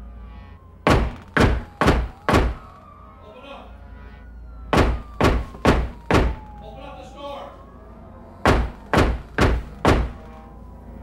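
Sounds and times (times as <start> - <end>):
heavy knocking on a door: 4.8 - 6.4, 8.5 - 10.2.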